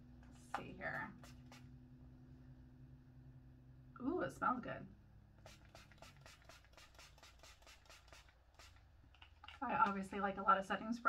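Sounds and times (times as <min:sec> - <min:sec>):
spray bottle hissing spritzes: 0:01.2 - 0:01.7, 0:05.4 - 0:08.9.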